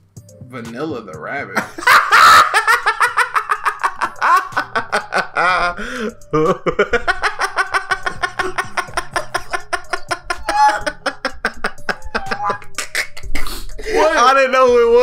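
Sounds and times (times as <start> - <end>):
men laughing hard: 1.6 - 14.2.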